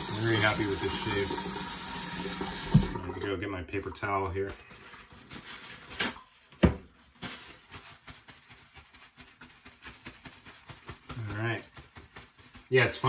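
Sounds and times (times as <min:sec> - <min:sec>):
paper towel rustling: 0:04.0 - 0:13.0.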